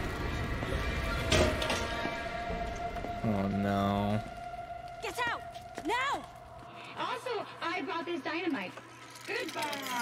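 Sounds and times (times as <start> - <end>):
orchestral score sustained tones: 0.5 - 8.2.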